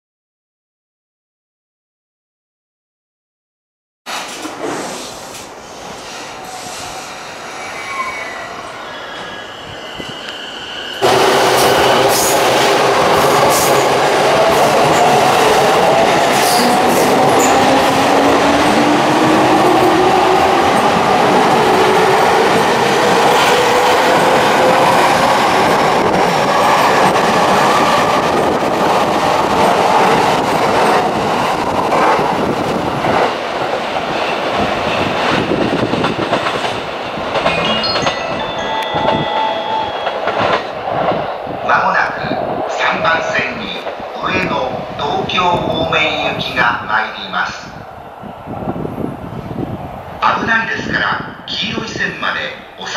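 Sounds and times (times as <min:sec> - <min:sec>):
electric train passing: 0:04.2 - 0:51.5
train wheels clacking: 0:35.0 - 0:41.2.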